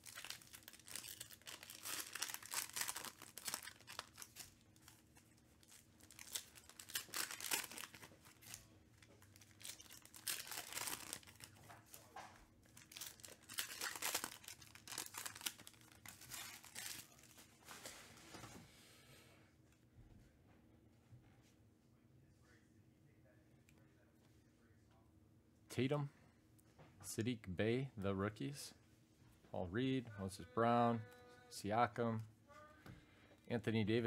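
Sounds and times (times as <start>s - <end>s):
foil wrapper tearing and crinkling: 0.0s - 8.6s, 9.2s - 12.0s, 12.7s - 17.3s.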